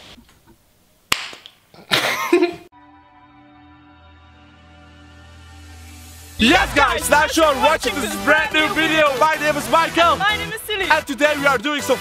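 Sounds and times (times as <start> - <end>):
person speaking: 6.4 - 10.8.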